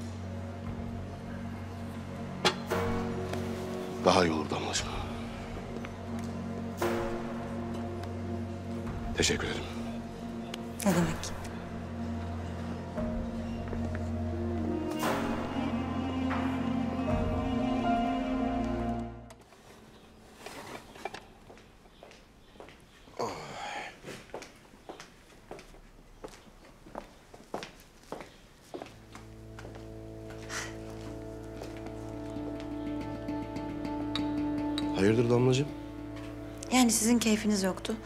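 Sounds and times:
low held drone music: 0.0s - 20.4s, 29.0s - 38.0s
sustained music note: 30.3s - 38.0s.

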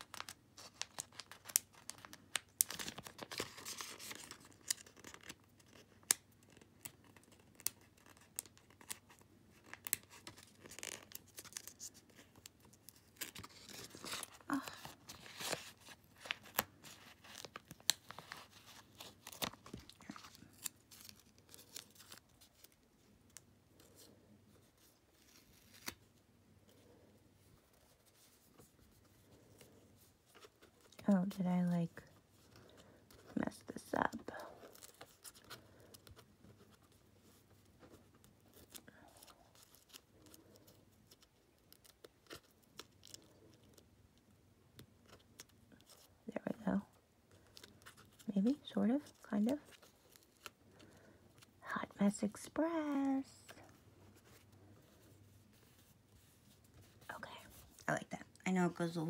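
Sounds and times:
paper crinkling: 0.0s - 59.0s.

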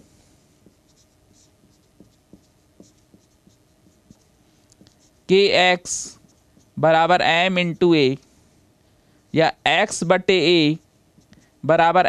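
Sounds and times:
marker pen scratching paper: 0.6s - 8.2s, 10.3s - 11.6s.

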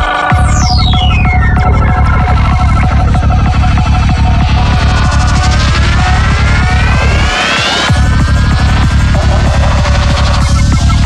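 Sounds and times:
droning bassline: 0.0s - 11.0s
pulsing synth notes: 0.0s - 11.0s
falling synth sweep: 0.3s - 11.0s.

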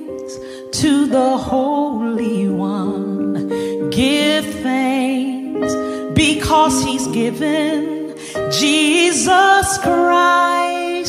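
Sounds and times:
person singing with vibrato: 0.0s - 11.0s.

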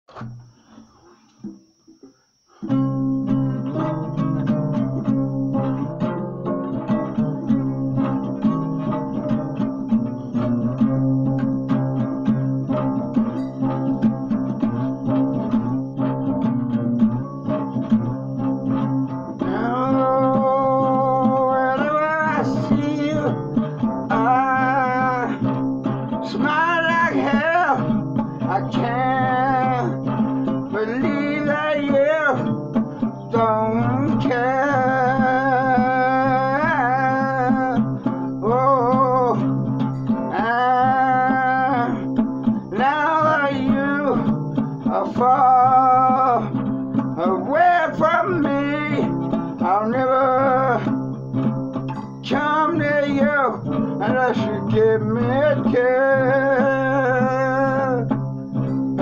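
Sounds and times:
acoustic guitar strumming: 0.1s - 59.0s
person singing: 2.6s - 59.0s.

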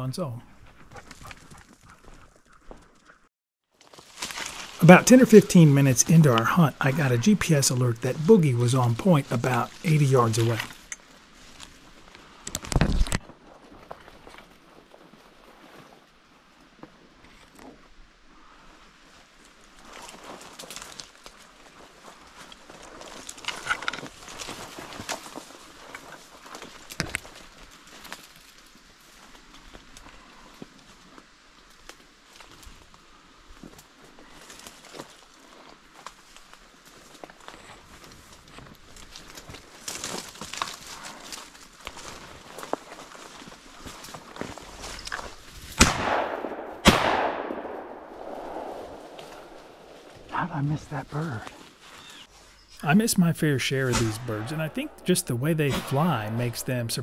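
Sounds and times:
footsteps through dry leaves: 3.7s - 4.9s, 34.2s - 45.7s
shotgun shots: 45.8s - 50.0s, 53.8s - 56.6s.

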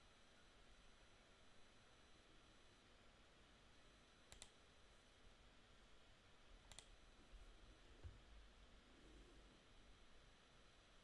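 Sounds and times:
computer mouse double clicks: 4.3s - 4.5s, 6.7s - 6.9s.

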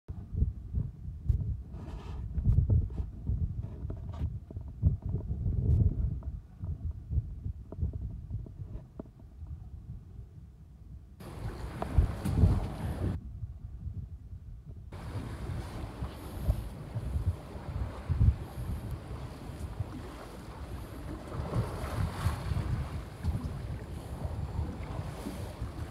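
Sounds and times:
wind buffeting microphone: 0.1s - 25.9s
sea water hissing: 11.2s - 13.2s, 15.0s - 21.8s.

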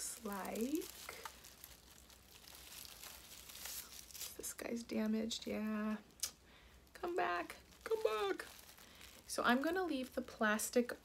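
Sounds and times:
plastic wrapping rustling: 0.0s - 11.0s.

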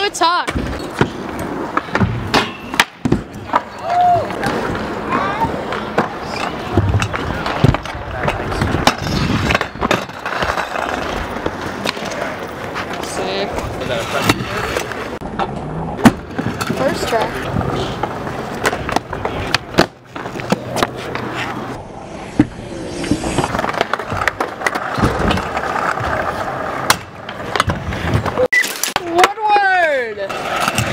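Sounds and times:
wheels rolling over asphalt: 3.1s - 30.9s.

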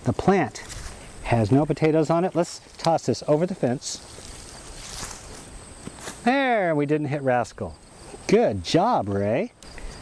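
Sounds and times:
plant leaves rustling: 0.0s - 6.6s
high insect drone: 0.3s - 10.0s.

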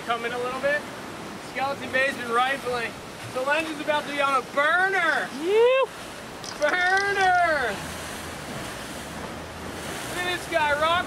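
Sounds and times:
waves breaking against boulders: 0.0s - 11.0s.

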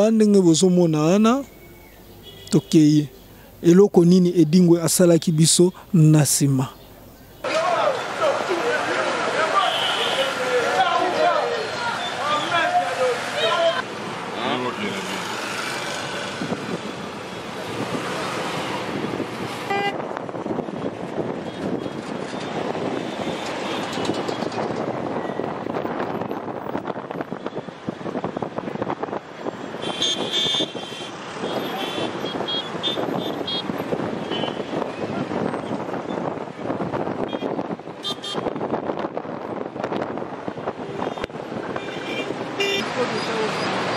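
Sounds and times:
road traffic noise: 0.0s - 43.9s.

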